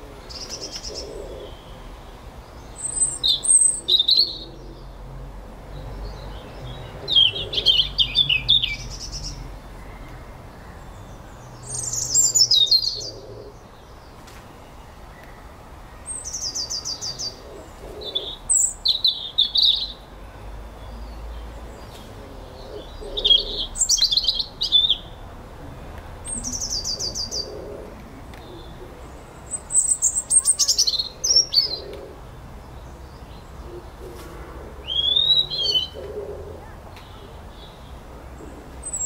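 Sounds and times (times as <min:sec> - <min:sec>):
small songbird singing: 0:00.0 - 0:05.0, 0:05.7 - 0:25.4, 0:26.2 - 0:27.7, 0:28.3 - 0:34.0, 0:34.7 - 0:39.0.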